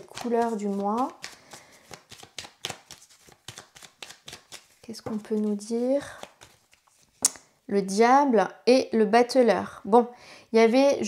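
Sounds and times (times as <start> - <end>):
cards being shuffled: 0.0 - 7.4.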